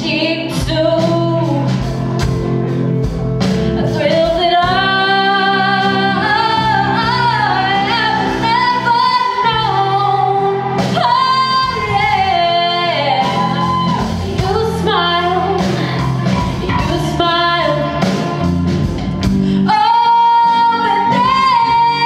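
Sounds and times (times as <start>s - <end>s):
woman singing: 0.0s - 2.0s, 3.8s - 18.5s, 19.6s - 22.0s
drums: 0.0s - 22.0s
electric guitar chords: 0.0s - 22.0s.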